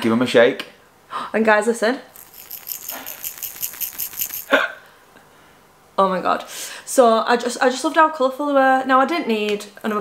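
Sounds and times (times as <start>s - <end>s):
headband rattle shaken: 2.1s - 4.6s.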